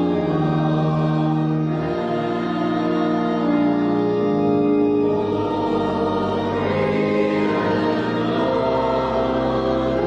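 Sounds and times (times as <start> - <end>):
church choir singing: 0.0 - 10.0.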